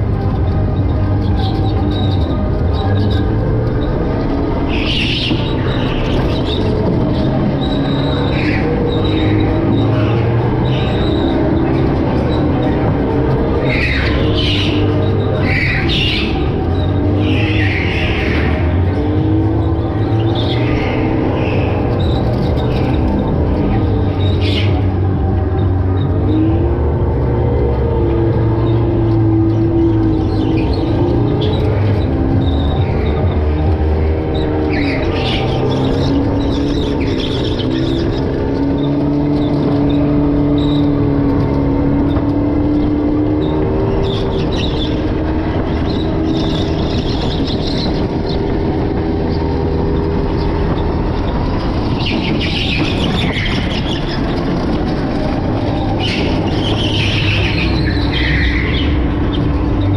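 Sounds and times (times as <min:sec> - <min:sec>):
electric go-kart motor whine: 0:00.0 - 0:59.9
tyres squealing: 0:00.0 - 0:59.9.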